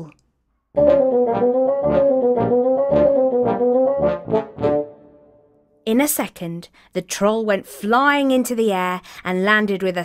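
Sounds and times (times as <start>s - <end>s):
held brass note: 0.8s - 5.4s.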